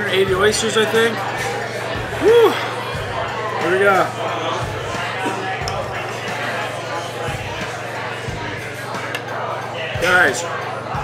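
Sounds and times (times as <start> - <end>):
indistinct background voices: 1.2 - 11.0.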